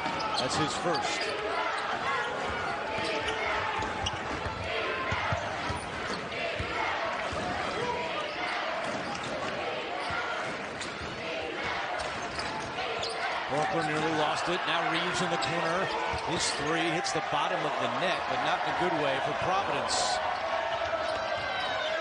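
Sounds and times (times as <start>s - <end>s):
murmur of arena crowd: 0.0s - 22.0s.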